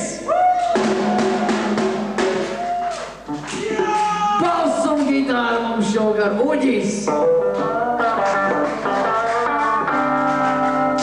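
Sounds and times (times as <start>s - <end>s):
rock drum kit hits: 0.6s - 4.1s.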